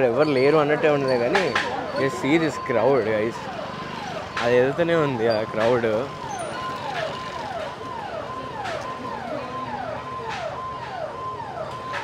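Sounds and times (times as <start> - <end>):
crowd and street noise: 0.0 - 12.0
police siren: 0.0 - 12.0.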